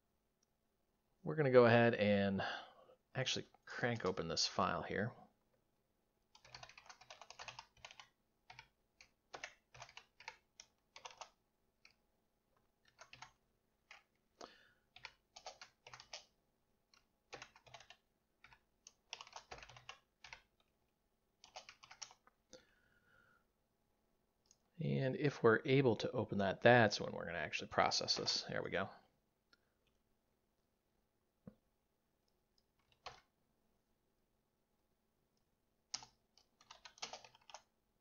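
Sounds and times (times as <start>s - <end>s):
computer keyboard typing: 6.3s - 12.0s, 12.8s - 14.2s, 14.9s - 20.7s, 21.4s - 22.3s, 32.6s - 33.3s, 35.9s - 37.7s.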